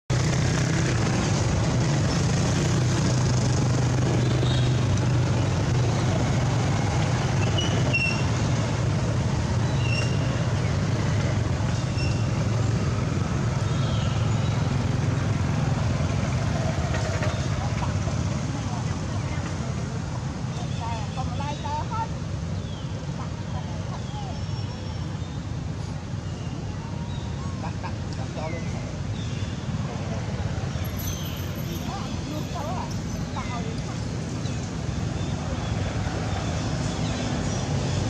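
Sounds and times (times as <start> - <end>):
low hum of road traffic: 0.1 - 38.0.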